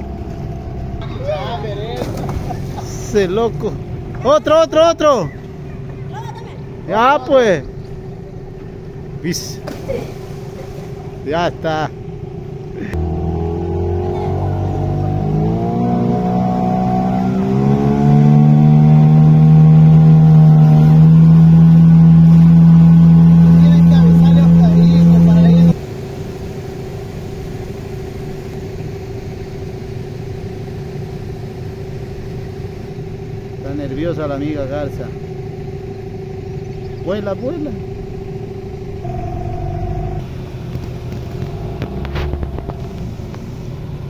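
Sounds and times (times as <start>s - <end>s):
boat motor revving: 0.0s - 44.0s
low steady hum: 0.0s - 44.0s.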